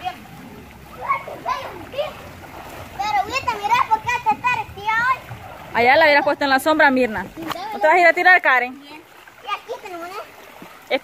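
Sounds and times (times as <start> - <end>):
water splashing into a pool: 0.0 - 11.0.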